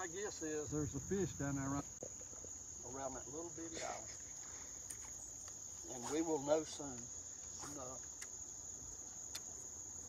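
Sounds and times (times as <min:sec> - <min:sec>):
insects singing: 0:00.0 - 0:10.0.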